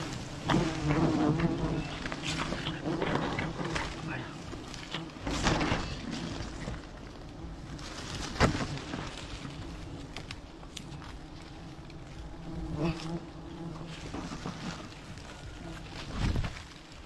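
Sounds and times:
bees buzzing: 0.0s - 17.0s
palm fronds crackling: 0.0s - 17.0s.

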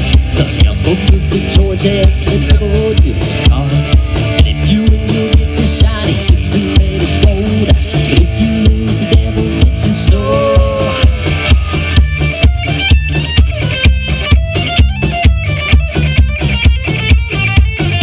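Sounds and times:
bass guitar: 0.0s - 18.0s
drum kit beat: 0.0s - 18.0s
electric lead guitar: 0.0s - 18.0s.

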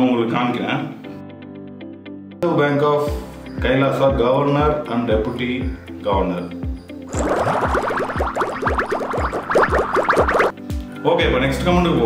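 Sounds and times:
rapid rising electronic blips: 7.1s - 10.5s.

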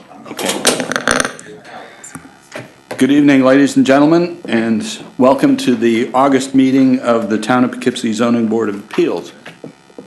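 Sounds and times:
throaty vocal noise: 0.0s - 2.4s.

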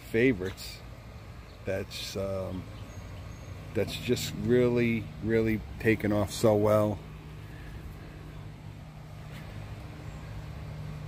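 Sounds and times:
faint outdoor hiss: 0.0s - 11.0s
low mechanical hum: 0.0s - 11.0s.

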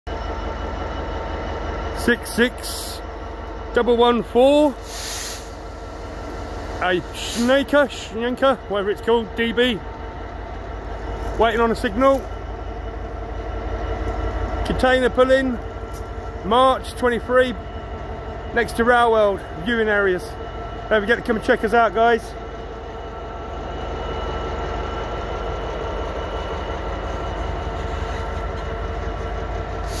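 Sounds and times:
diesel locomotive engine idling: 0.1s - 30.0s.

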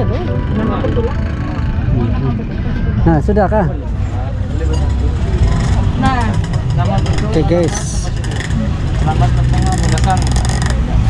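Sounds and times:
people talking: 0.0s - 3.8s.

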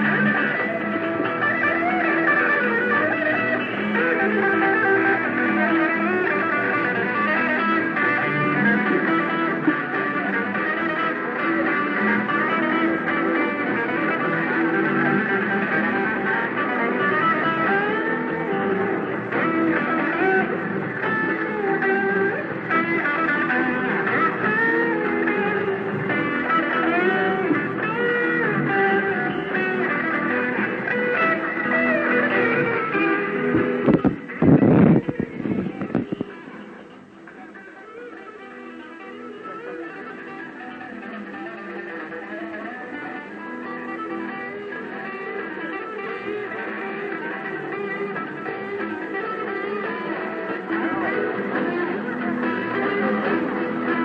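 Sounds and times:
rock band playing: 0.0s - 54.0s.

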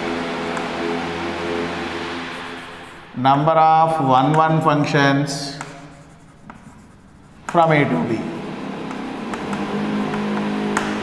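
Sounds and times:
steady low hum: 0.0s - 10.3s
chalk writing on blackboard: 2.2s - 3.5s, 4.2s - 11.0s.

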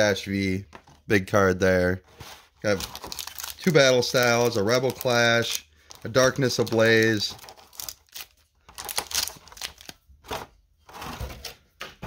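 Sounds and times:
plastic packaging crinkling: 2.6s - 11.1s.

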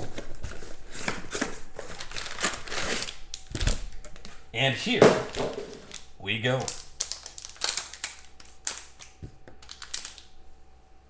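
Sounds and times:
foil pack crackling: 0.0s - 4.1s, 5.2s - 10.4s.

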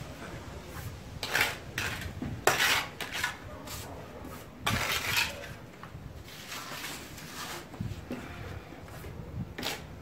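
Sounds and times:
trowel scraping mortar: 0.7s - 8.0s, 9.5s - 9.9s.

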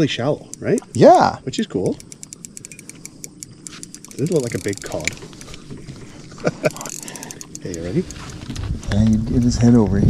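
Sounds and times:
spinning reel clicking rapidly: 1.8s - 5.6s, 6.6s - 8.4s.

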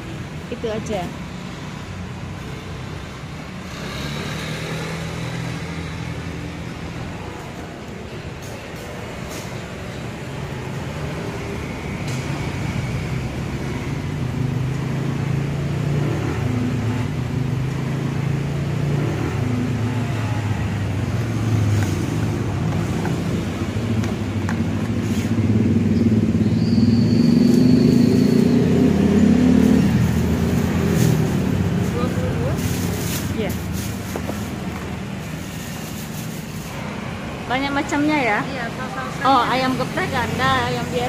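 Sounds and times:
vehicle engine rumbling: 0.0s - 41.0s.

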